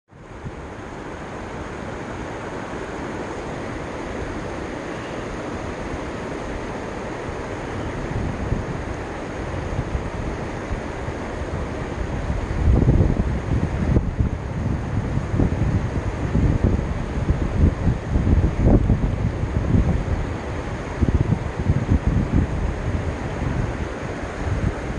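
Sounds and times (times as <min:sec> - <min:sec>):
steady rushing noise: 0:00.1 - 0:24.9
wind buffeting microphone: 0:05.8 - 0:24.9.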